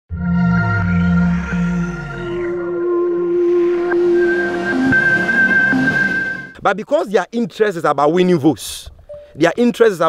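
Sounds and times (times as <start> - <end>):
news ident music: 0.2 - 6.6.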